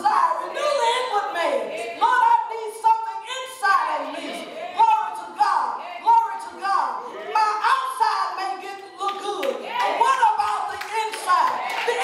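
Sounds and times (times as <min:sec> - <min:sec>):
woman chanting into microphone: 0:00.3 - 0:07.1
hand-clapping: 0:09.0 - 0:12.0.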